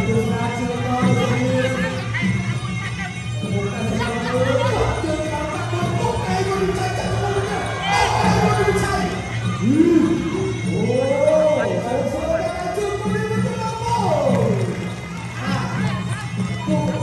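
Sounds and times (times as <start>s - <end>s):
crowd voices: 0.0s - 17.0s
wavering pipe melody: 0.0s - 17.0s.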